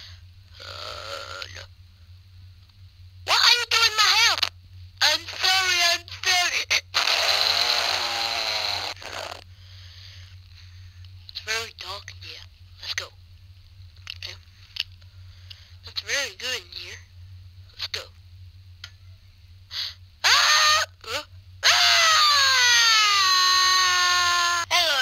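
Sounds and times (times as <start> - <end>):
long raspy vocal noise: 0.0 - 1.7, 7.0 - 9.5
steady low hum: 0.0 - 25.0
high-pitched wavering cries: 7.0 - 9.4, 20.2 - 25.0.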